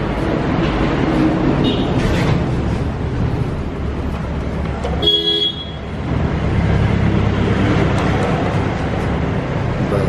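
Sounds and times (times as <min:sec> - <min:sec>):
low rumble of vehicle noise: 0:00.0 - 0:10.0.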